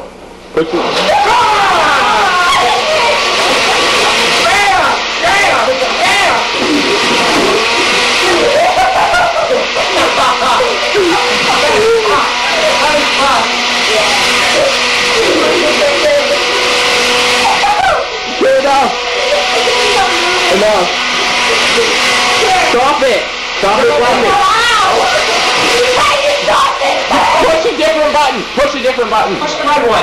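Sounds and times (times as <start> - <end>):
blender whirring: 0.0 - 30.0
kids yelling and cheering: 0.7 - 30.0.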